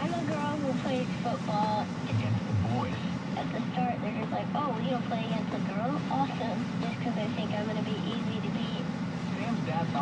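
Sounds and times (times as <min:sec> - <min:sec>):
faint radio talk: 0:00.0 - 0:10.0.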